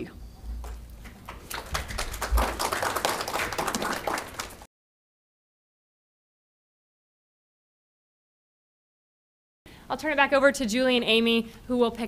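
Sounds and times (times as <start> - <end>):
audience applauding: 1.2 - 4.7.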